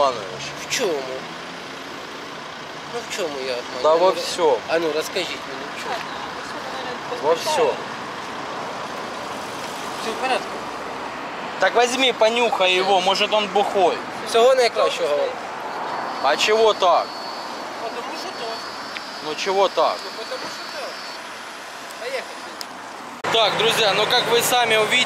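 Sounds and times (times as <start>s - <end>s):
road traffic hum: 0.0s - 25.0s.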